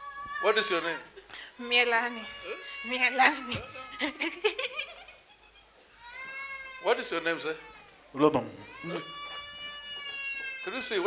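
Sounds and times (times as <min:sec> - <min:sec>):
high-pitched vocal cry: 0:01.8 - 0:04.5.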